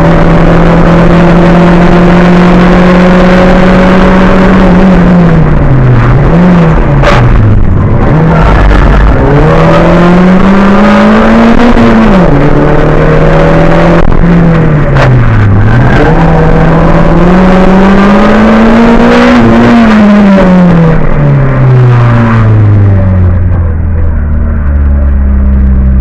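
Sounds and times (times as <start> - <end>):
race car engine revving: 0.0 - 26.0.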